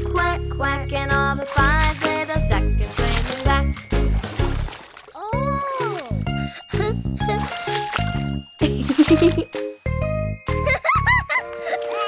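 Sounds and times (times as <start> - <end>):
bouncy instrumental children's music: 0.0 - 12.0
tinkling chimes: 0.0 - 12.0
plucked bass notes: 5.3 - 10.4.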